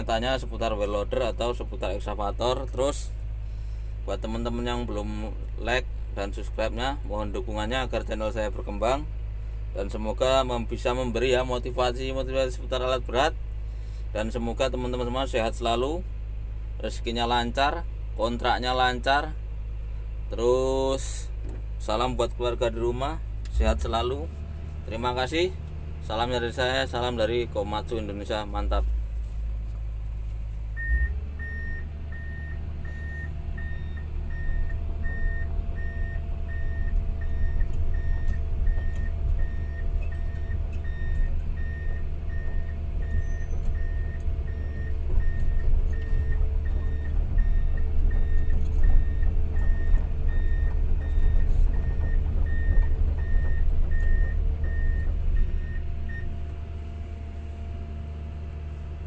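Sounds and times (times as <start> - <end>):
excavator diesel engine running: 0.0 - 59.0
travel alarm beeps: 30.8 - 56.3.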